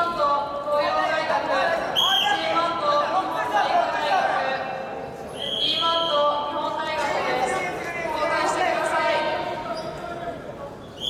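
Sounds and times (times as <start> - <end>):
voices shouting in a hall: 0.0 - 11.0.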